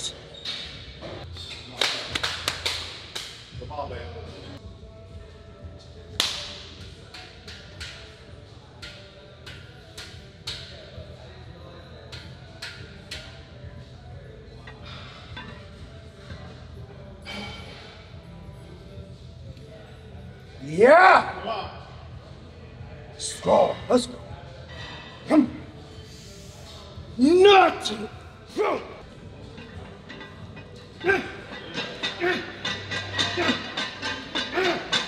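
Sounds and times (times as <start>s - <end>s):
faint background music: 0.0s - 35.0s
barbell plates clanking: 29.2s - 35.0s.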